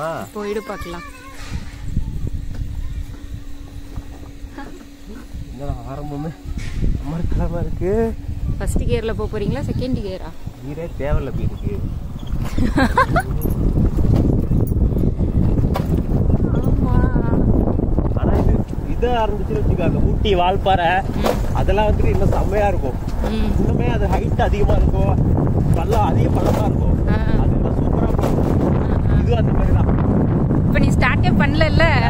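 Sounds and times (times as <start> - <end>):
steady low hum: 0.0 - 32.0
wind buffeting microphone: 0.6 - 32.0.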